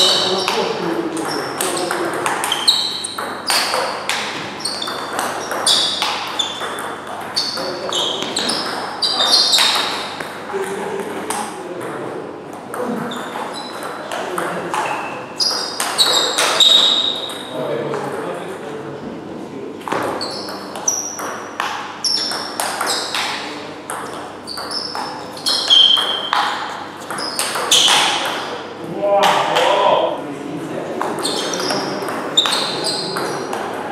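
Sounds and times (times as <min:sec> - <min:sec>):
table tennis ball struck by bats: 0:00.0 - 0:17.5, 0:19.8 - 0:28.6, 0:31.0 - 0:33.8
ball bouncing on table: 0:00.0 - 0:18.3, 0:19.8 - 0:28.6, 0:31.0 - 0:33.8.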